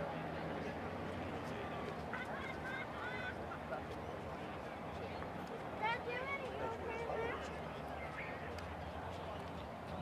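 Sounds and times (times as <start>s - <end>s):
outdoor background noise: 0.0s - 10.0s.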